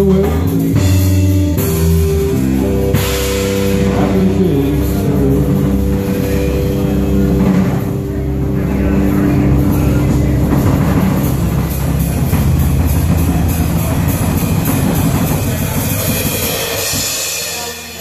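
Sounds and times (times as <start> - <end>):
double bass: 0.0 - 18.0
drum kit playing: 0.0 - 18.0
electric bass guitar: 0.0 - 18.0.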